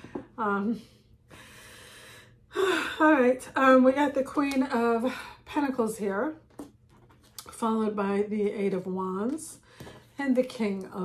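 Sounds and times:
woman speaking: 0:00.4 - 0:01.0, 0:02.6 - 0:06.4, 0:07.4 - 0:09.6, 0:10.2 - 0:11.0
woman breathing: 0:01.0 - 0:03.0.

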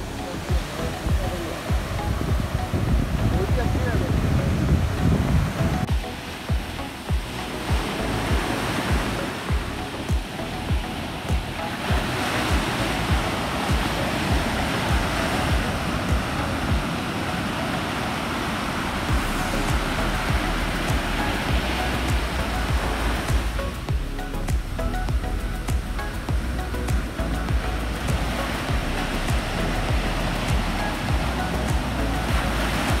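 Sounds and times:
background music with beat: 0:00.0 - 0:33.0
ocean surf breaking: 0:00.0 - 0:33.0.

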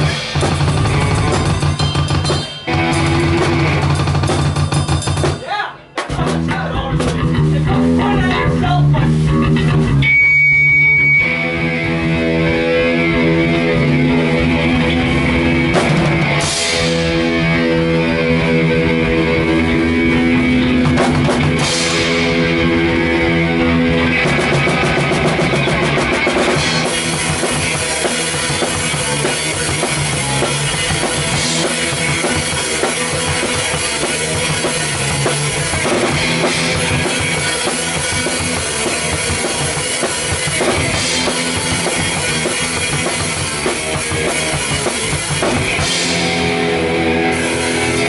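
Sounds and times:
distorted electric guitar chords: 0:00.0 - 0:05.4, 0:06.1 - 0:48.0
bass guitar: 0:00.0 - 0:48.0
drum kit: 0:00.0 - 0:48.0.

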